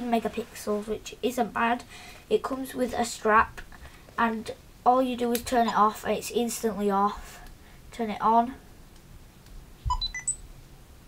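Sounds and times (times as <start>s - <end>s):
camera start-up beeps: 9.9s - 10.4s.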